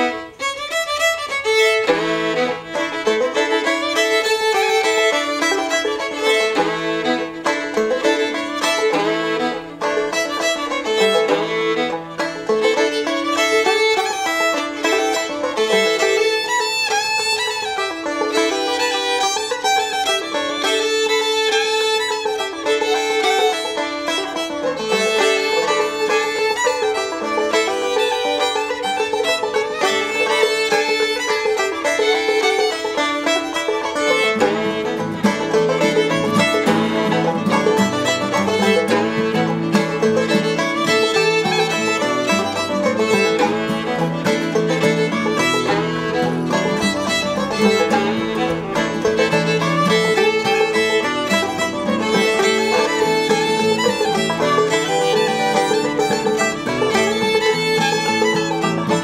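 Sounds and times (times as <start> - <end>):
fiddle melody: 0.0 - 59.0
picked banjo: 0.0 - 59.0.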